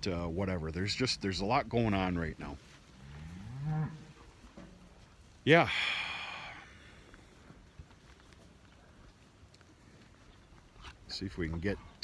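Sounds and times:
cow mooing: 3.0s - 4.1s.

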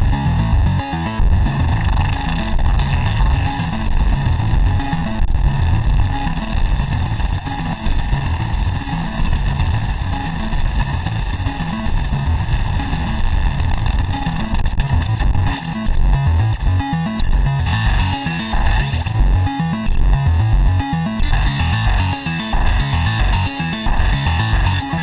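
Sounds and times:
synthesizer playing low notes: 0.0s - 25.0s.

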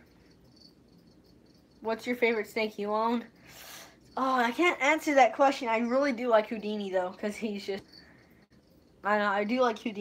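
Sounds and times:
cricket chirping: 0.0s - 5.1s, 7.3s - 10.0s.

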